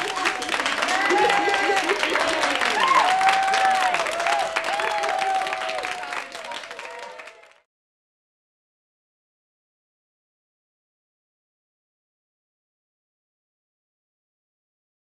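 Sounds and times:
voices calling out: 0.0 - 3.2
audience applauding: 0.0 - 7.7.

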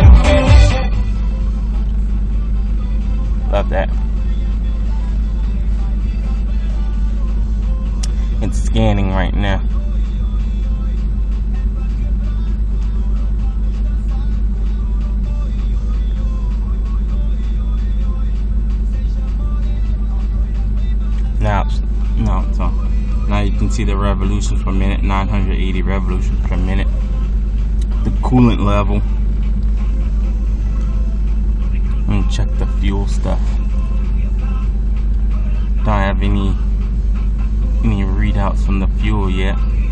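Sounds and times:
car engine idling: 0.0 - 39.9
music playing: 0.0 - 39.9.

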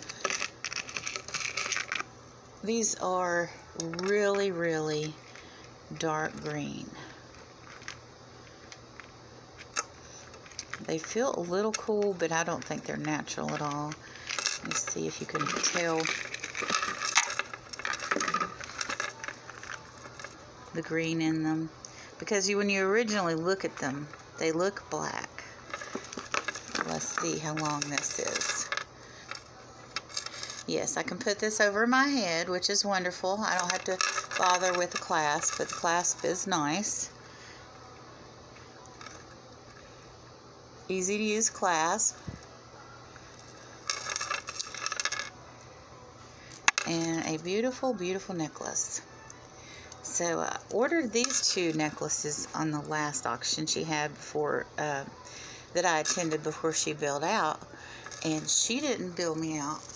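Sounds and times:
beaded necklace jingling: 0.0 - 2.0, 10.4 - 20.4, 22.4 - 37.1, 43.3 - 45.3, 55.8 - 59.9.

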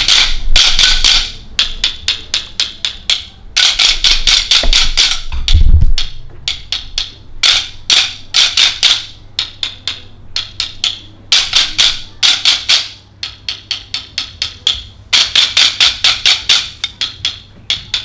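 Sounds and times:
wooden sticks clacking: 0.0 - 18.0.

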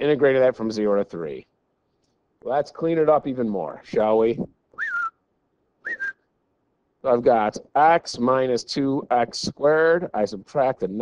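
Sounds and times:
man whistling: 4.7 - 5.2, 5.8 - 6.3.

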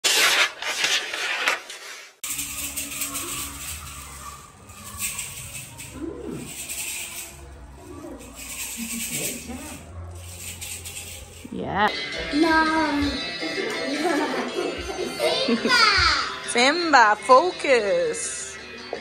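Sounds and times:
young children's voices: 3.2 - 6.5, 14.2 - 16.4.

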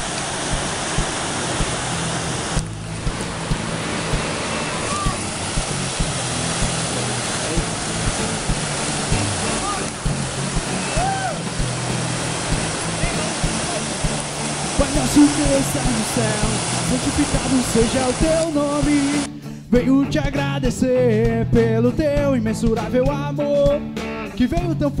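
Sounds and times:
surf breaking over rocks: 0.0 - 19.3
wind noise: 0.0 - 19.3.

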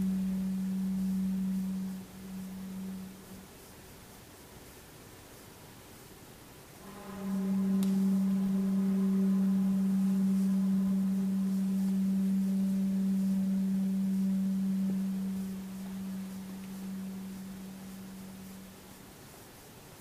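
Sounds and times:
bamboo flute long low note: 0.0 - 3.5, 6.8 - 19.1.

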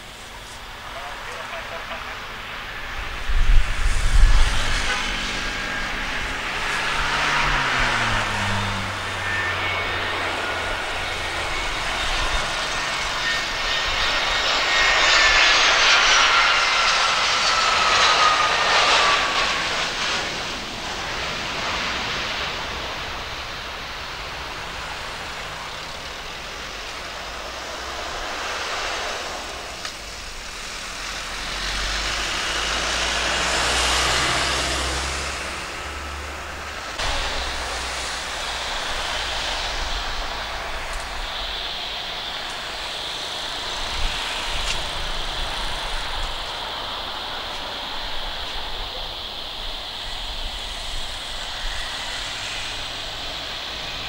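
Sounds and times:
jet engine whine and roar: 0.0 - 54.0
jet rumble rolling out: 0.0 - 54.0.

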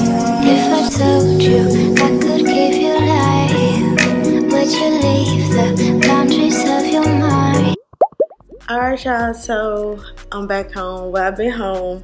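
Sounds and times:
rising cartoon bloops: 7.8 - 8.7.

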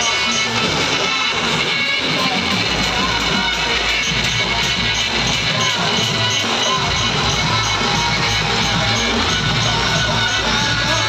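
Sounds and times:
loud dj music: 0.0 - 11.0.

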